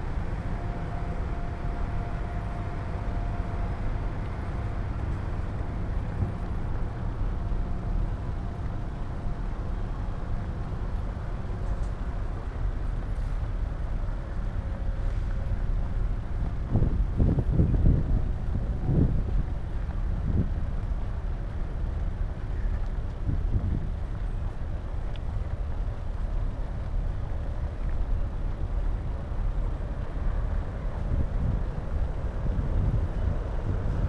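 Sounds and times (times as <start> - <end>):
wind on microphone: 14.9 - 34.0.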